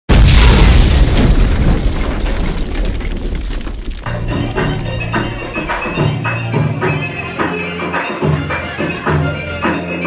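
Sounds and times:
deep boom hit: 0.1 - 6.2.

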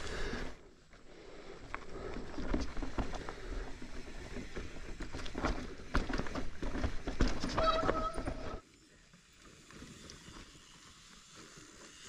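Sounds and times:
bike tyres on dirt trail: 0.0 - 12.0
bike knocking and rattling: 1.6 - 8.6.

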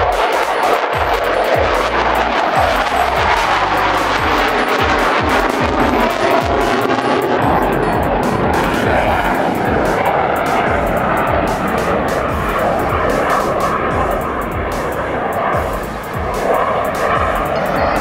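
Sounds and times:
jet engine roaring overhead: 0.0 - 18.0
music playing: 0.0 - 18.0.

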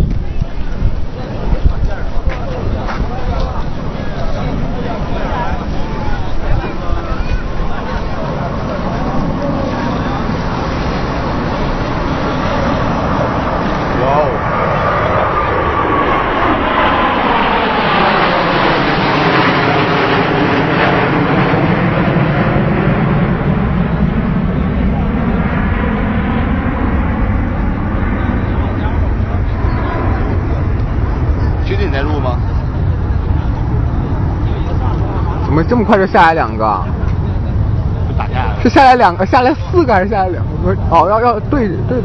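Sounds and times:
jet aircraft flying past: 0.2 - 42.0.

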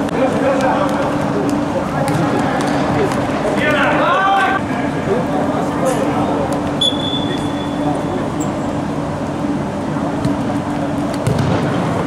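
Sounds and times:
constant low hum: 0.0 - 12.0
ball being kicked: 11.2 - 11.7.

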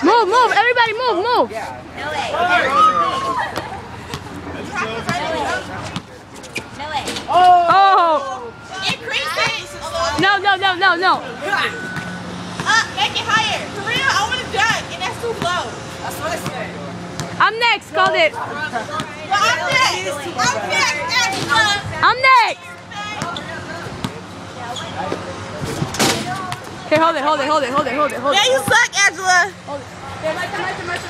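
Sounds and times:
children talking: 0.0 - 31.0
child shouting: 2.2 - 3.5
basketball bouncing: 12.0 - 15.6.

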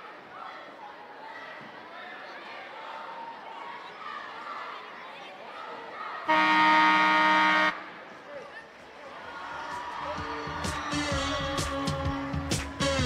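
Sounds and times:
crowd chatter: 0.0 - 13.0
scoreboard horn blast: 6.3 - 7.9, 11.0 - 13.0
music with a beat: 10.2 - 13.0.

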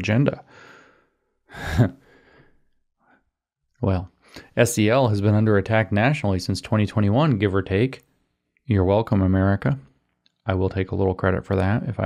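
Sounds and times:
man sighing: 0.5 - 2.6.

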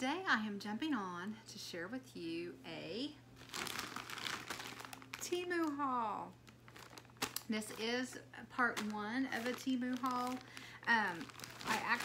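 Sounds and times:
synthetic garment crinkling: 3.4 - 12.0.

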